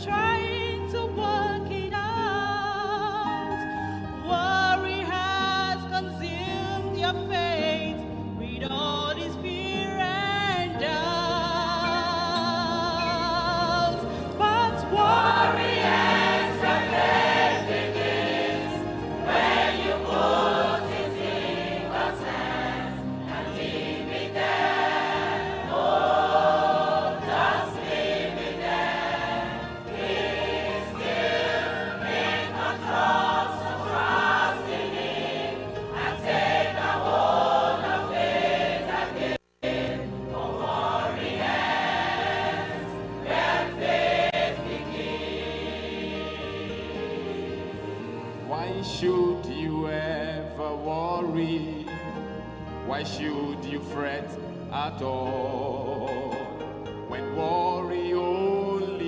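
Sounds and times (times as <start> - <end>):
choir singing slow song: 0.0 - 59.0
instrumental accompaniment: 9.0 - 49.4.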